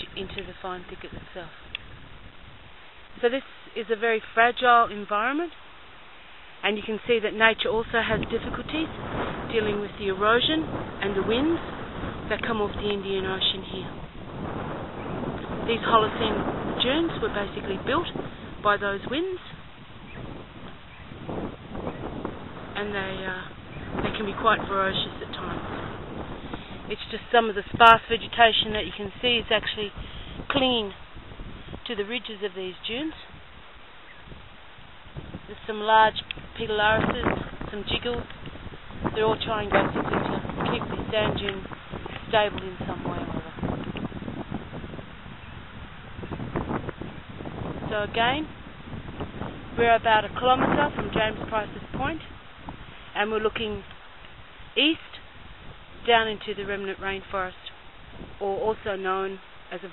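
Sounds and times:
wind on microphone: 0.0 - 59.9.

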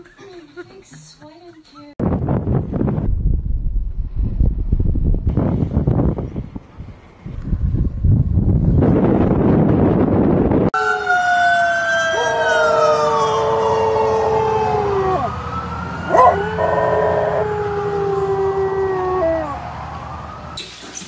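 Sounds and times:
wind on microphone: 2.0 - 10.8
dog howling: 10.8 - 15.4, 16.1 - 19.6.

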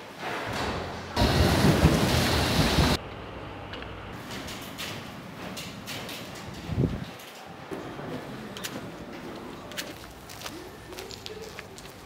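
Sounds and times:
background noise: 0.0 - 12.0
loud rushing noise: 1.2 - 3.0.

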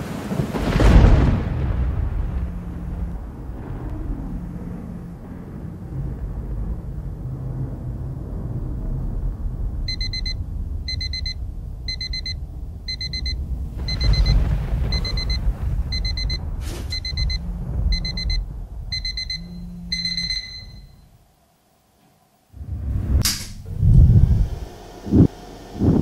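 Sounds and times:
low rumble: 0.6 - 21.4, 22.5 - 26.0
alarm clock beeping: 9.9 - 21.0.

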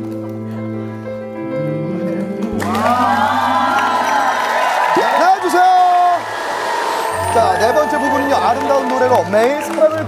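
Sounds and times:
music: 0.0 - 10.0
audience cheering and screaming: 2.5 - 10.0.

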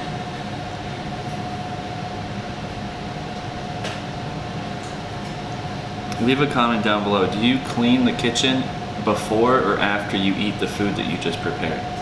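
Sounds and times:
machine hum: 0.0 - 12.0
thin steady whine: 0.0 - 12.0.

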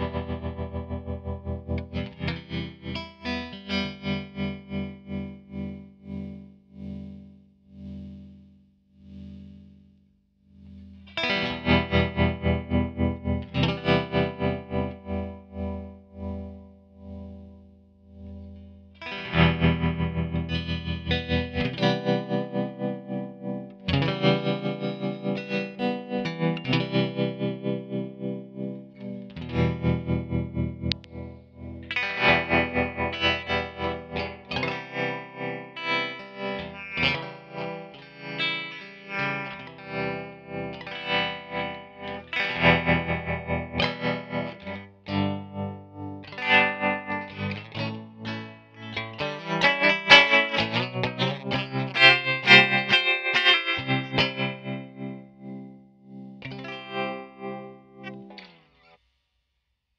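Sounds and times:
filtered electric guitar pulsing: 0.0 - 58.7.

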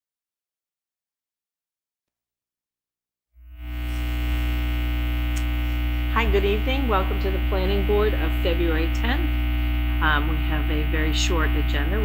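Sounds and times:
electrical mains hum: 3.4 - 12.0.

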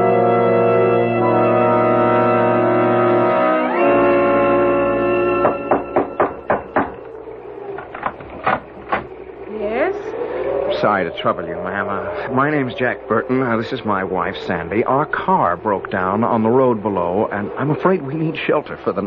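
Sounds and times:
organ-like bridge music: 0.0 - 9.4
sharp short knocks: 5.4 - 7.1
door creaking open: 5.4 - 9.4.

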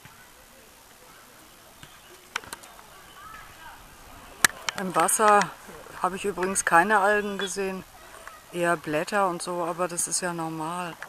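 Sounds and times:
distant voices: 0.0 - 11.0
steady hiss: 0.0 - 11.0.

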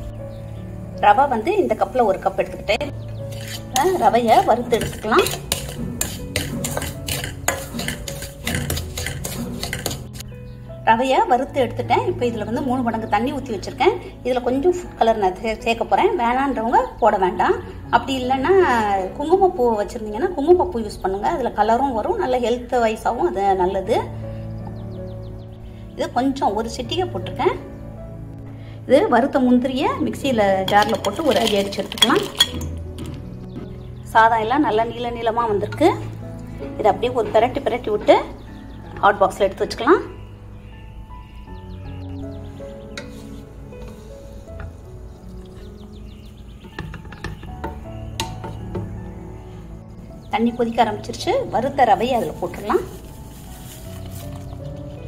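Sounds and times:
spatula scraping semolina in pan: 3.2 - 10.3, 30.8 - 32.5
nuts clinking into metal jar: 30.7 - 32.7.

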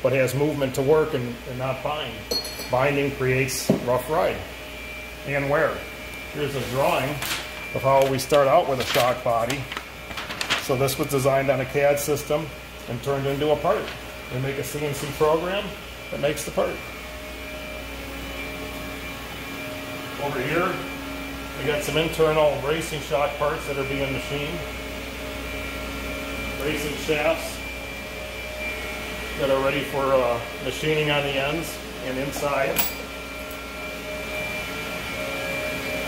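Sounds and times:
machinery humming: 0.0 - 36.0.

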